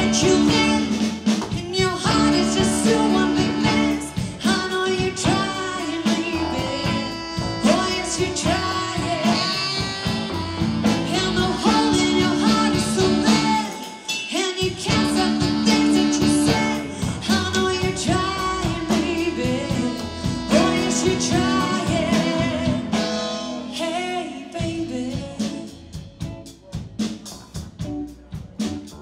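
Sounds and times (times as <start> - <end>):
woman singing without words: 0.0 - 26.1
live blues rock band: 0.0 - 29.0.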